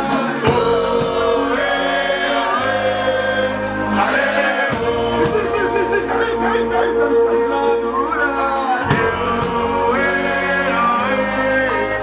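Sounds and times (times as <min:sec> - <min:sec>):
steady bass: 0:00.0 - 0:12.0
voices singing in chorus: 0:00.0 - 0:12.0.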